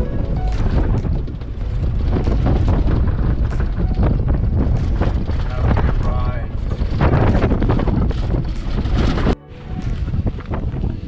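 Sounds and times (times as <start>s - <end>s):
engine and tyre rumble: 0.0s - 11.0s
wind buffeting microphone: 0.0s - 11.0s.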